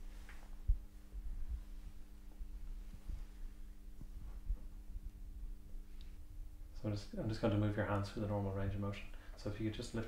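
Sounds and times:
soft low thumps: 0.0s - 6.6s
low electrical hum: 0.0s - 10.0s.

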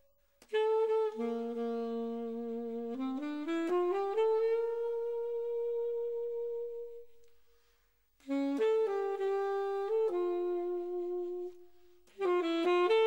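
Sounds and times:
alto saxophone melody: 0.4s - 13.0s.

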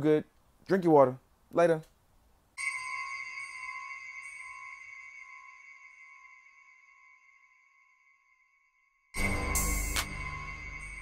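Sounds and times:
bell-like chime ringing: 2.6s - 11.0s.

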